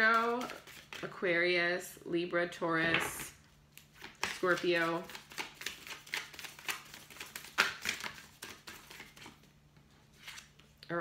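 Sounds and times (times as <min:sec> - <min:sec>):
cards being shuffled: 0:00.0 - 0:01.1, 0:02.9 - 0:09.5, 0:10.1 - 0:10.8.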